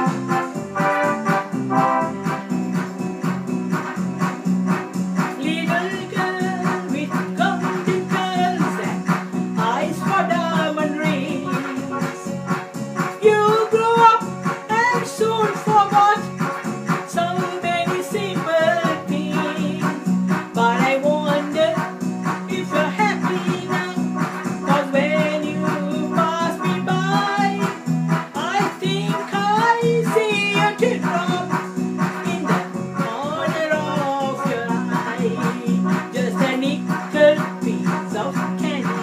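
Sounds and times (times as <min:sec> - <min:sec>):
rhythmic accompaniment with beat: 0:00.0 - 0:39.0
woman singing: 0:05.3 - 0:12.4, 0:13.1 - 0:16.4, 0:17.1 - 0:39.0.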